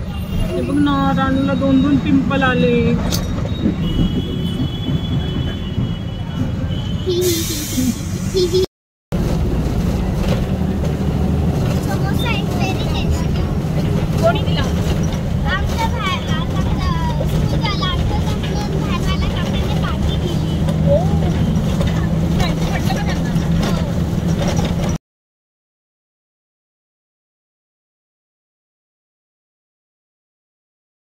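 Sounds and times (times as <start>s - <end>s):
bus engine and road drone: 0.0s - 25.0s
child talking: 7.1s - 7.7s, 8.3s - 8.7s, 11.8s - 13.6s, 15.4s - 21.3s.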